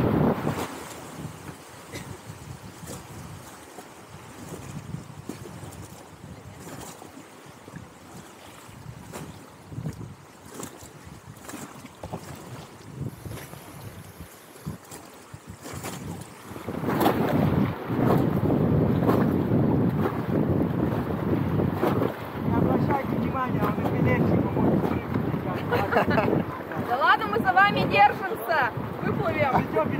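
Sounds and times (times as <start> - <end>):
river water rushing and splashing: 0.0 - 29.9
wind noise on microphone: 0.0 - 29.9.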